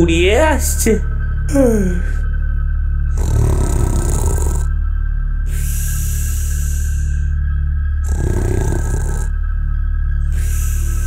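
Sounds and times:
background music: 0:00.0 - 0:11.0
rough growling voice: 0:03.1 - 0:04.7, 0:08.0 - 0:09.3.

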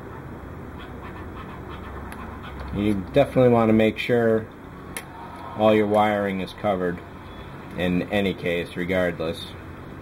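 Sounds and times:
background hiss with low hum: 0:00.0 - 0:10.0.

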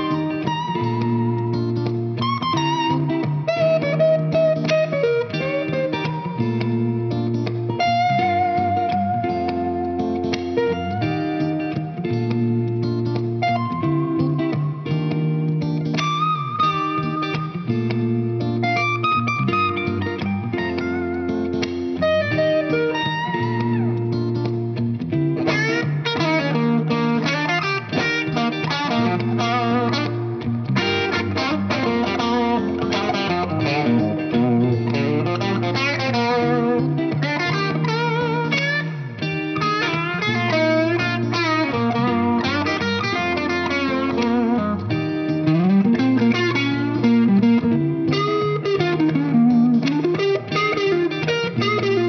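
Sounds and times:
electric guitar playing: 0:00.0 - 0:52.0.

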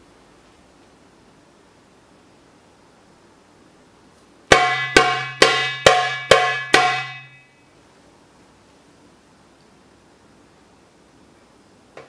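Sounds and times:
darbuka strokes: 0:04.5 - 0:07.4.

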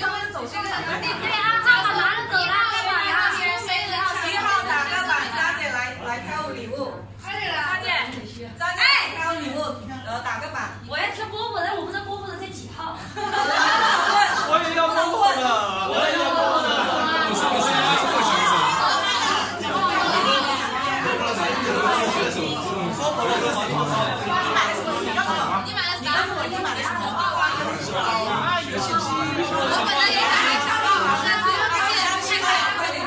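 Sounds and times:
group of people chattering: 0:00.0 - 0:33.0.

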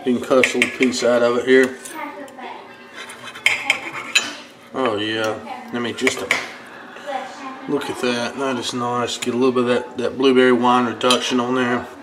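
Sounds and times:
cutlery scraping a plate: 0:00.3 - 0:02.0, 0:02.7 - 0:05.0, 0:11.0 - 0:11.4
knife sawing meat: 0:02.9 - 0:04.4.

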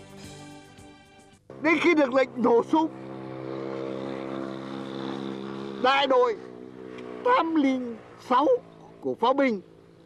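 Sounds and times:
man speaking: 0:01.6 - 0:03.0.

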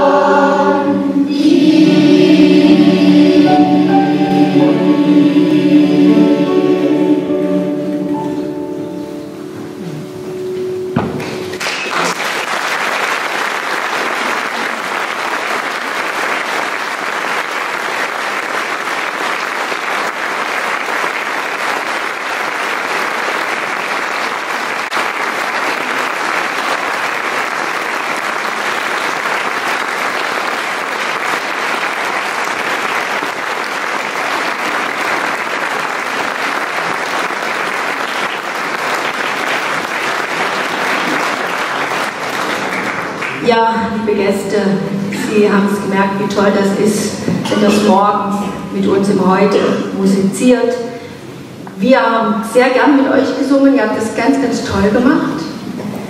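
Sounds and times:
crowd applauding: 0:11.2 - 0:43.5.

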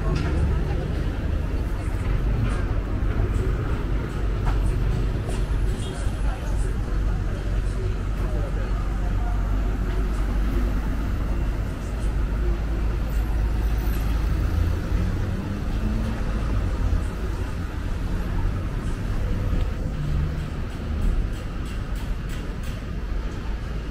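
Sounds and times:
indistinct voices: 0:00.0 - 0:23.9
low rumble of traffic: 0:00.0 - 0:23.9.

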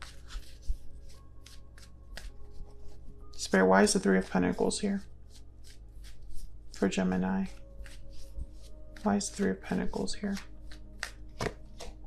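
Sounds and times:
cards being shuffled: 0:00.0 - 0:12.0
faint background music: 0:00.0 - 0:12.0.

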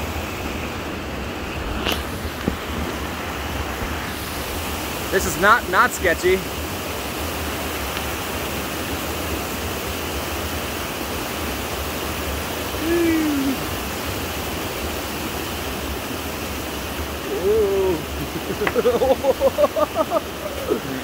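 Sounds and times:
creek water rushing: 0:00.0 - 0:21.0.

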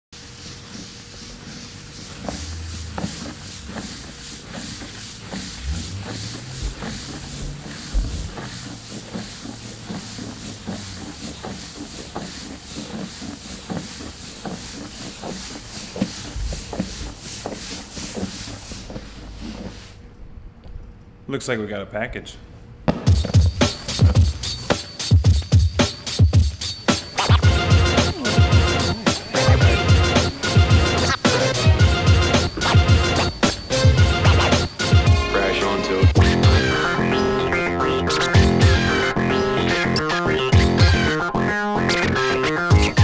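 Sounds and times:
pulsing hiss: 0:00.2 - 0:19.9, 0:27.0 - 0:37.1.

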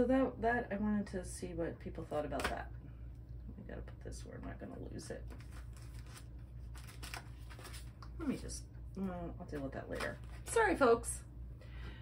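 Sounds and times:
low room hum: 0:00.0 - 0:12.0.

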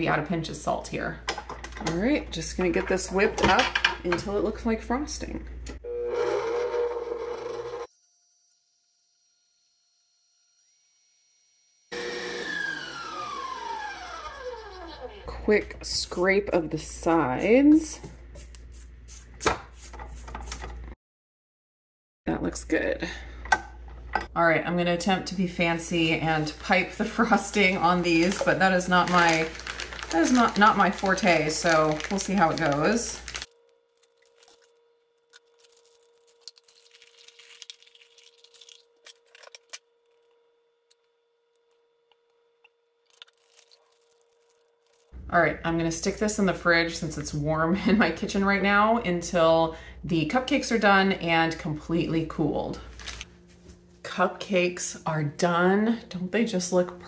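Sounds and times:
plastic bag rustling and crinkling: 0:26.0 - 0:40.4, 0:43.1 - 0:45.2, 0:52.8 - 0:53.3.

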